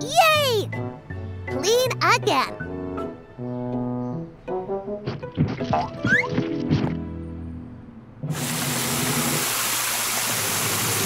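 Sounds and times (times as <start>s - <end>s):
cartoon water gushing spray: 8.3s - 11.0s.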